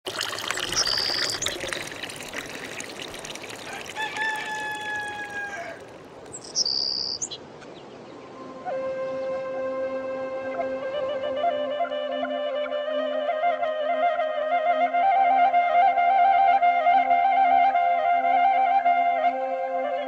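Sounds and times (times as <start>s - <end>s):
water pouring into stone trough: 0.0s - 6.3s
short high bird calls: 3.7s - 7.4s
wavering flute-like music: 8.1s - 20.0s.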